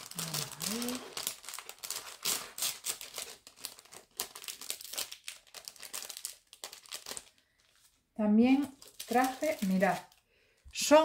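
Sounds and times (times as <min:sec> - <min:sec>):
plastic packet crinkling: 0:00.0 - 0:10.6.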